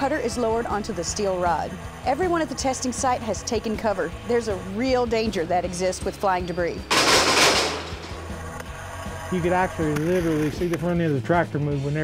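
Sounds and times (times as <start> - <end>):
metal blades crashing on steel rod: 6.9 - 8.5
grinding and scattering debris: 6.9 - 8.6.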